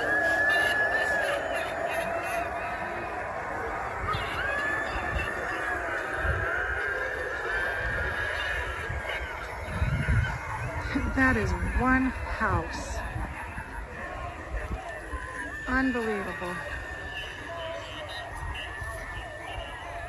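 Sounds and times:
low steady drone: 0.0 - 20.0
wavering high wails: 0.0 - 20.0.

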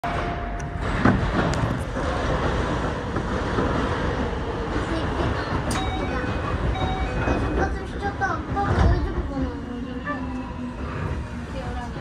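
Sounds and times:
train rumble and hiss: 0.6 - 12.0.

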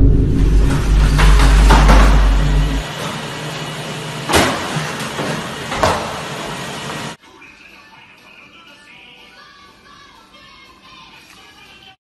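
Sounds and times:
loud low rumble: 0.0 - 2.8
sharp knocks: 0.0 - 2.8
treadmill motor and belt hum: 0.0 - 7.2.

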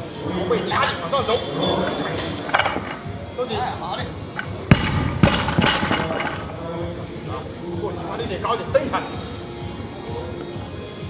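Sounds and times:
barbell thudding on platform: 4.6 - 6.6.

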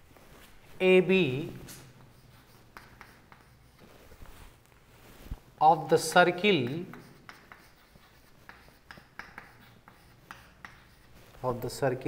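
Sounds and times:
chalk writing on a chalkboard: 1.0 - 5.2, 5.8 - 12.0.

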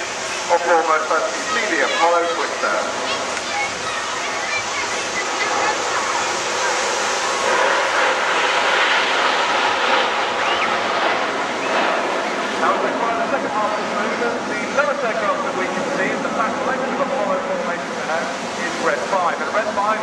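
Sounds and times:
jet formation flying overhead: 0.0 - 20.0.

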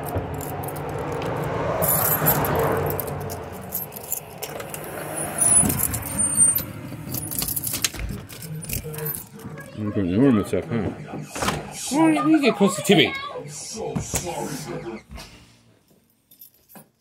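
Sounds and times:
keys jangling: 0.0 - 9.8, 16.2 - 17.0.

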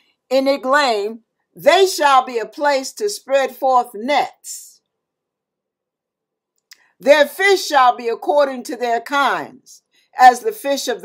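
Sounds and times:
woman speaking: 0.3 - 4.8, 7.0 - 11.0
mouth click: 6.6 - 6.9.

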